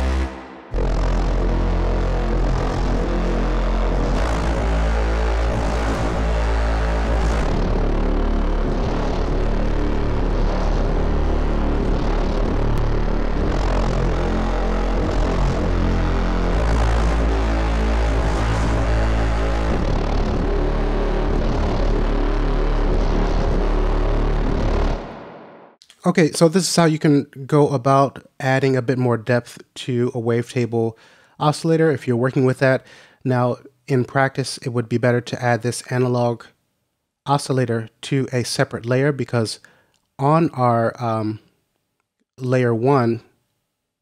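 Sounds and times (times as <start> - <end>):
deep sine-wave bass: 0.0 - 25.8
sustained synthesizer tone: 0.0 - 25.8.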